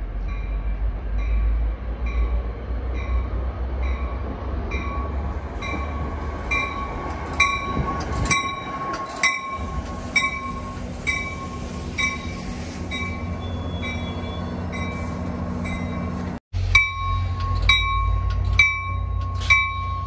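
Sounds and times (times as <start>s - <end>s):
passenger train rumbling past: 0.0s - 20.0s
rush of passing train front: 0.0s - 20.0s
bell ringing: 16.8s - 20.0s.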